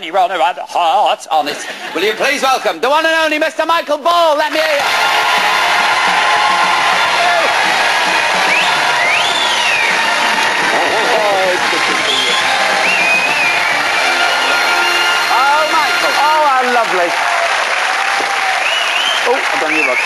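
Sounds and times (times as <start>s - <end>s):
audience applauding and cheering: 4.6s - 20.0s.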